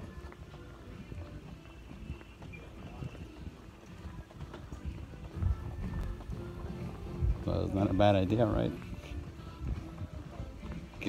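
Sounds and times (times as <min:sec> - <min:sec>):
distant voices: 0:00.0 - 0:11.0
faint background music: 0:00.0 - 0:11.0.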